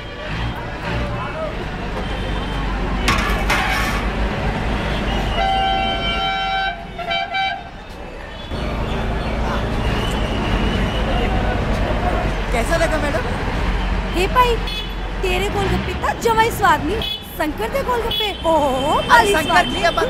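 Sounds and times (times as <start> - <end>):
street noise low rumble: 0.0 - 20.0
vehicle horn honking: 4.9 - 7.8, 14.6 - 15.0, 18.0 - 20.0.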